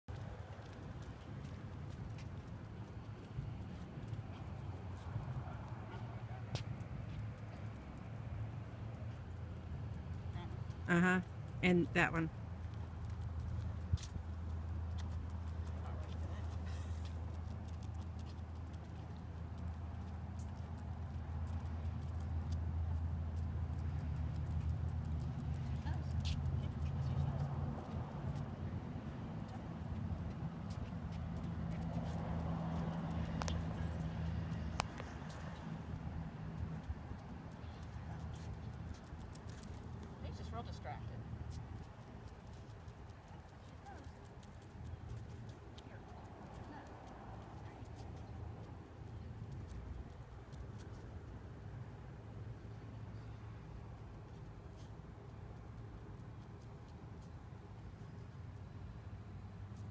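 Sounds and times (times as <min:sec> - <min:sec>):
dog claws ticking on concrete: 0:12.6 - 0:51.6.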